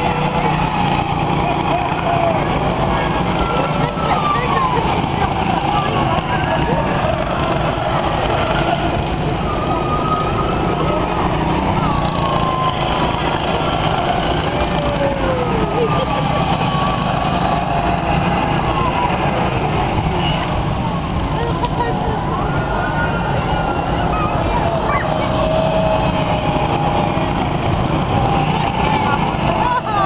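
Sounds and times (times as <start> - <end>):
go-kart engines racing: 0.0 - 30.0.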